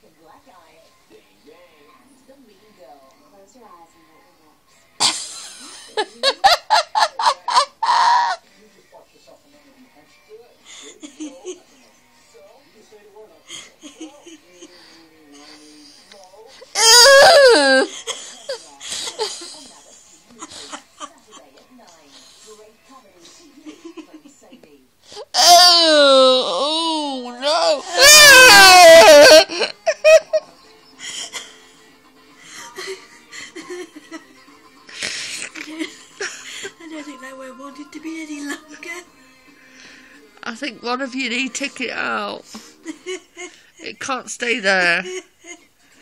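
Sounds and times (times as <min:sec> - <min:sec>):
cat yowling: 0:16.8 - 0:17.9, 0:27.5 - 0:29.4
person crying out: 0:16.8 - 0:17.9, 0:25.3 - 0:29.7.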